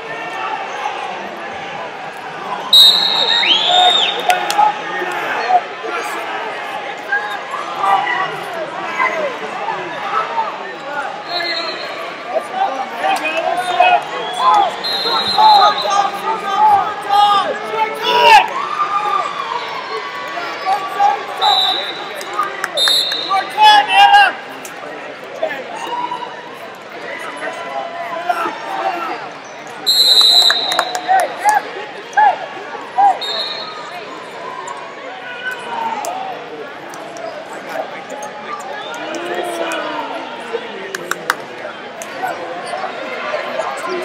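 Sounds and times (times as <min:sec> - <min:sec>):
voices shouting in a hall: 0:00.0 - 0:44.0.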